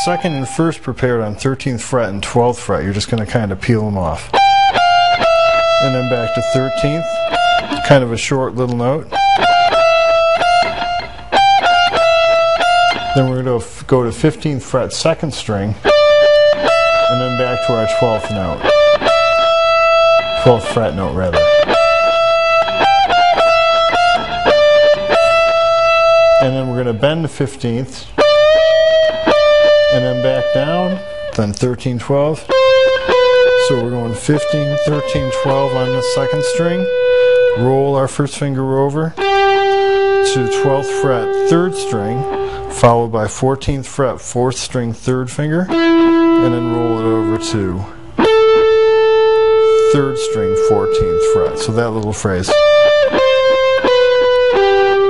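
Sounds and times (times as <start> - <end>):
electric guitar slow lead: 0.0 - 0.9, 4.2 - 8.0, 9.0 - 13.5, 15.8 - 27.0, 28.1 - 31.4, 32.4 - 38.0, 39.1 - 42.8, 45.7 - 55.0.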